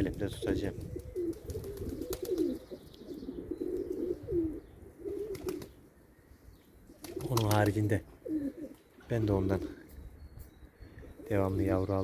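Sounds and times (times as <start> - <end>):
pigeons cooing: 0.0 - 10.1, 10.8 - 12.0.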